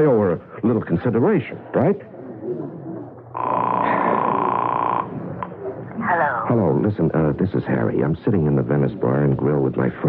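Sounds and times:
telephone ringing tone: 3.4 - 5.1.

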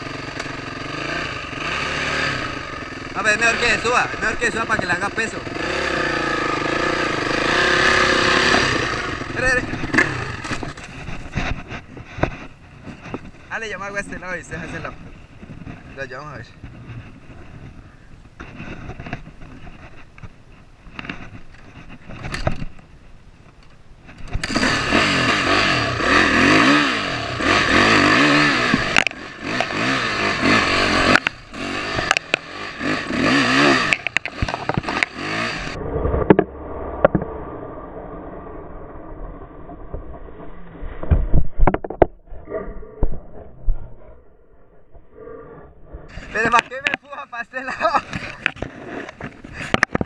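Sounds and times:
dirt bike engine revving: 0.0 - 15.9, 24.2 - 37.7, 46.1 - 50.0
knocks and thumps: 41.0 - 42.2.

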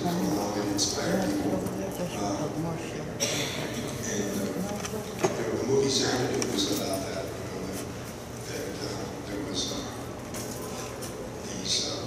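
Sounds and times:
man speaking over loudspeaker: 0.0 - 10.1, 11.4 - 12.0.

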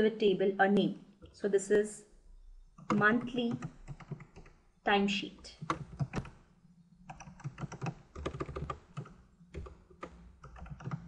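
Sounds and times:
typing on computer keyboard: 2.8 - 4.6, 5.6 - 6.4, 7.1 - 11.0.

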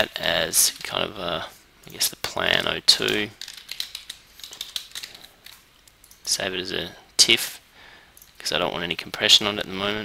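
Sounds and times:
computer keyboard keystrokes: 3.1 - 6.2.

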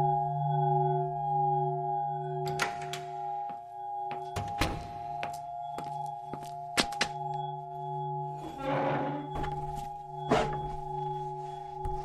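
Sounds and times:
steady held tone drone: 0.0 - 12.0.

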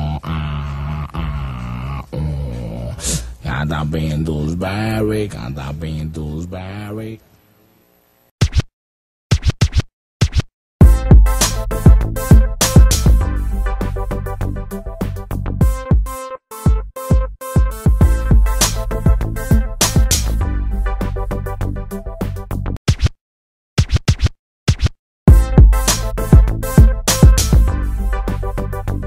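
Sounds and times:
electronic hip-hop beat: 9.4 - 22.5, 25.3 - 29.0.

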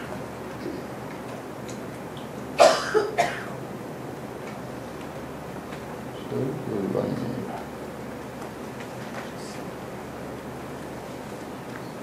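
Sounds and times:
person coughing: 2.6 - 3.6.

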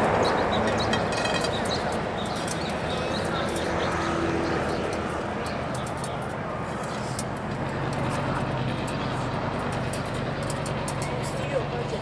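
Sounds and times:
engine drone: 0.0 - 12.0
voices murmuring: 0.0 - 12.0.

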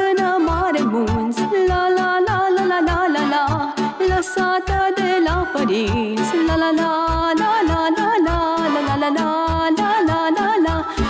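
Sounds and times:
saxophone and accordion melody: 0.0 - 11.0.

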